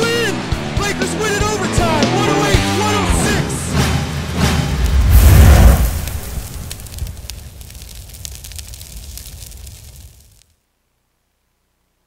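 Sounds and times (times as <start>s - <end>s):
deep booming whoosh: 3.7s - 7.9s
fine crackles: 4.8s - 10.5s.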